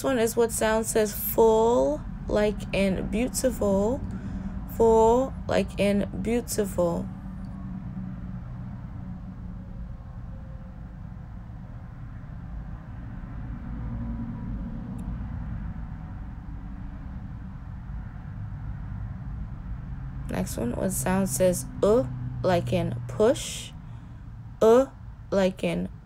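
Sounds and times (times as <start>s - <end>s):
faint hum: 0.0s - 26.0s
low background rumble: 0.0s - 26.0s.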